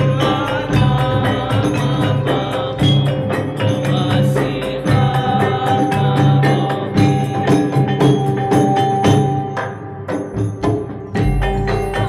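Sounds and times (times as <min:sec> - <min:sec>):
men chanting in unison: 0:00.0 - 0:07.4
frame drums: 0:00.0 - 0:12.0
metallophones ringing: 0:00.0 - 0:12.0.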